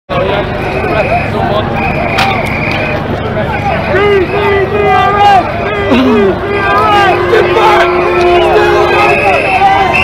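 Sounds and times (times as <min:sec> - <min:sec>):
crowd shouting: 0:00.1 - 0:10.0.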